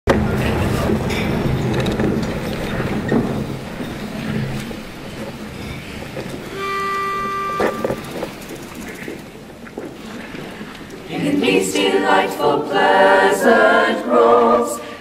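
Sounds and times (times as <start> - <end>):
low room noise: 0.1 - 15.0
pitch pipe note: 6.5 - 8.3.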